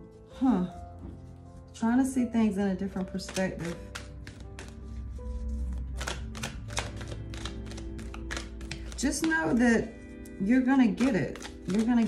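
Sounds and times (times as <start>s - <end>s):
soft background music: 0.0s - 12.0s
cards being shuffled: 2.9s - 12.0s.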